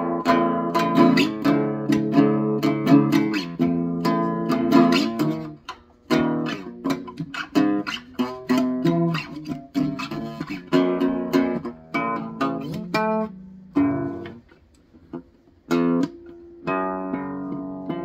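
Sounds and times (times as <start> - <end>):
acoustic guitar plucked and strummed: 0.0 - 18.0.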